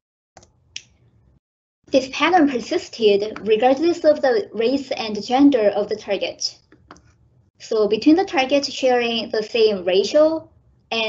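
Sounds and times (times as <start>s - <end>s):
mouse clicks: 6.6s - 7.2s.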